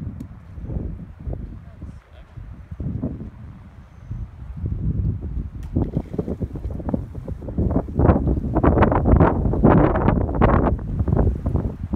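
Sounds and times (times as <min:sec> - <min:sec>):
wind buffeting microphone: 0:00.0 - 0:11.9.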